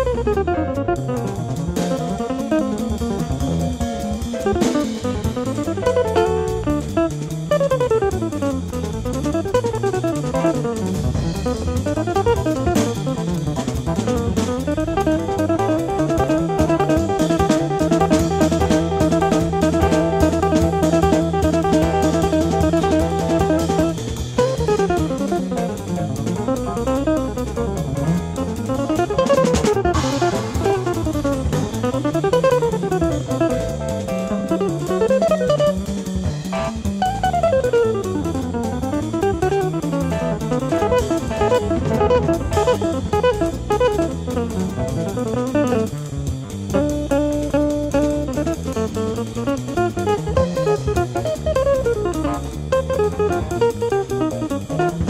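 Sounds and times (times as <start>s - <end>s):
bass: 0.0s - 55.0s
drums: 0.0s - 55.0s
jazz guitar: 0.0s - 55.0s.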